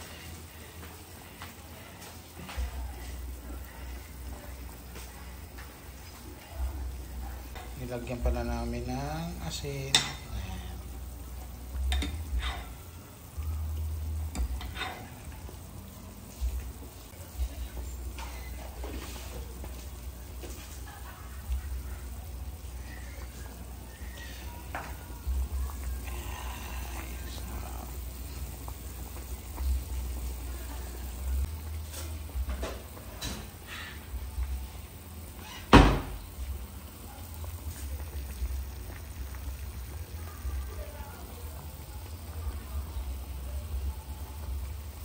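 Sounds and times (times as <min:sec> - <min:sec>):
soup boiling and bubbling: 0:00.0 - 0:45.0.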